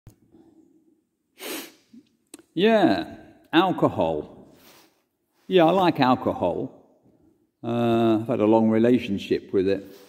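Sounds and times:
man's sharp breath: 1.4 - 2.0.

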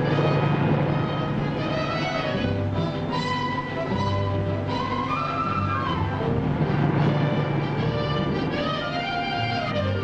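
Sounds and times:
orchestral strings melody: 0.0 - 10.0.

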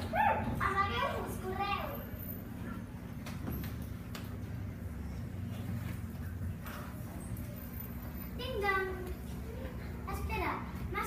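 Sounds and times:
young children yelping: 0.0 - 1.3
young children calling: 0.0 - 2.8.

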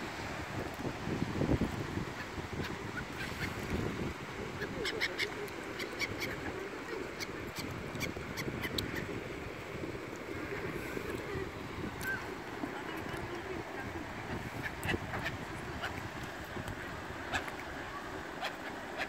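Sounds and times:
wind rumble on microphone: 0.0 - 18.2
gulls calling: 4.5 - 9.2, 10.4 - 19.0.

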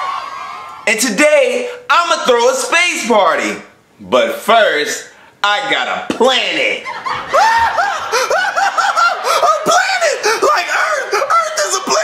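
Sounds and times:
person laughing: 7.0 - 11.4.

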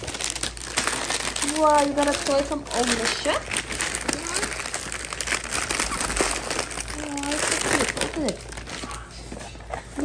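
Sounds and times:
wrapping paper crinkling: 0.0 - 10.0
child voice sounds: 4.0 - 4.7, 6.9 - 8.3.

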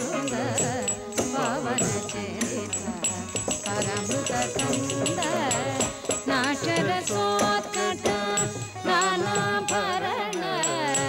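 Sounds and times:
person singing ornamented melody: 0.0 - 11.0.

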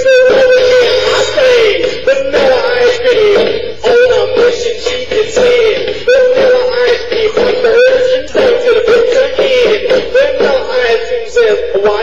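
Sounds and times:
man singing over backing track: 0.0 - 12.0.

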